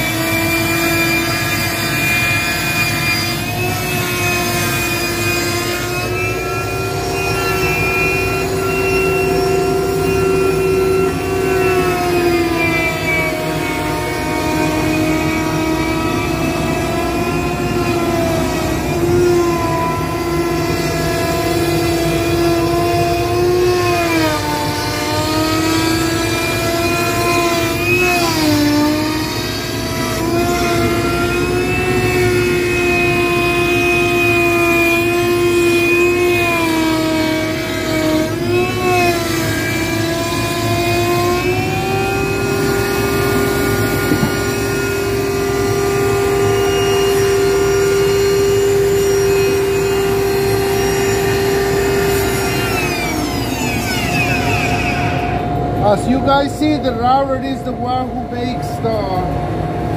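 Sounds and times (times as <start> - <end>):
router bit cutting wood: 0.0 - 59.4
router motor whining: 0.0 - 59.9.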